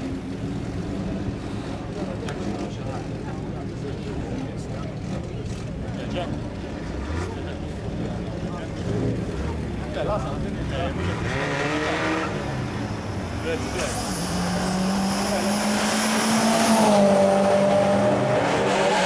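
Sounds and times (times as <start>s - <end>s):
people's voices: 0.0s - 19.0s
car engine revving: 6.2s - 19.0s.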